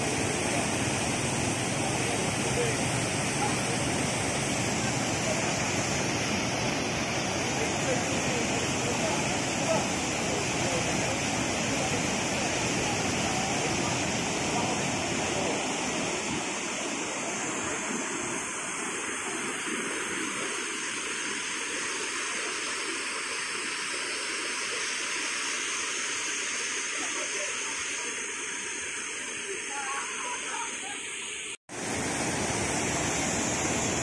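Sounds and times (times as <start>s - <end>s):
floodwater rushing: 0.0s - 34.0s.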